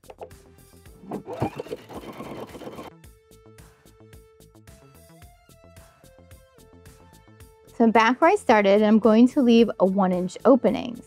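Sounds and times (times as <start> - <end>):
sewing machine running: 1.0 - 2.9.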